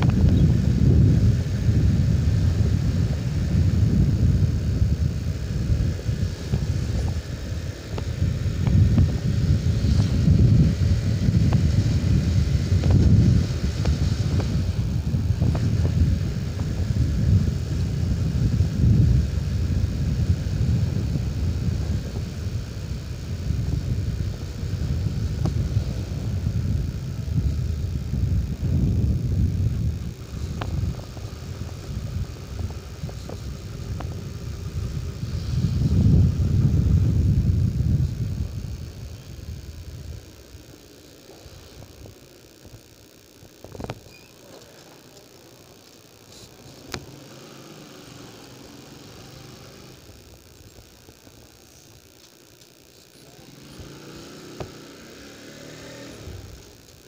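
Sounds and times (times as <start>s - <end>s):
wind buffeting on microphone: 0.0s - 40.6s
motorcycle engine: 0.0s - 57.0s.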